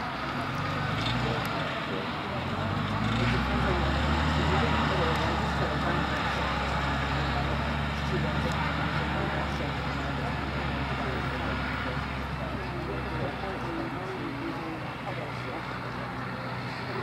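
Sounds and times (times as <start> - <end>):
indistinct background voices: 0.0 - 17.0.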